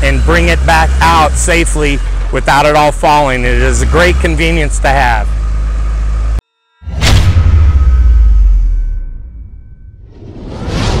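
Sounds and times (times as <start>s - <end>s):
rising whoosh: 6.8s - 11.0s
whoosh with booming rumble: 6.9s - 11.0s.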